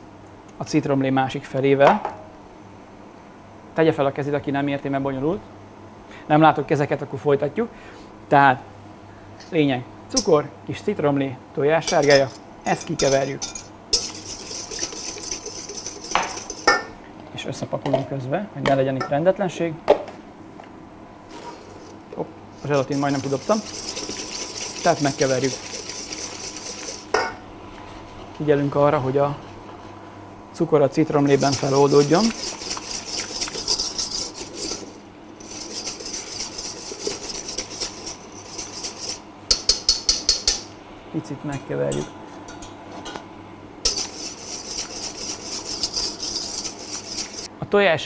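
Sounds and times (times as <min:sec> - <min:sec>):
whisk beating in metal bowl: 0:11.9 - 0:16.8, 0:22.6 - 0:27.3, 0:31.0 - 0:40.6, 0:43.9 - 0:47.5
whisk knocking against bowl: 0:13.0 - 0:16.9, 0:22.6 - 0:27.3, 0:31.2 - 0:40.7, 0:43.9 - 0:47.5.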